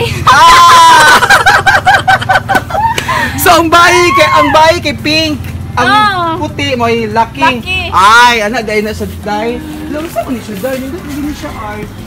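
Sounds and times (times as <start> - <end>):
high-pitched squeal of laughter: 0.0 - 3.3.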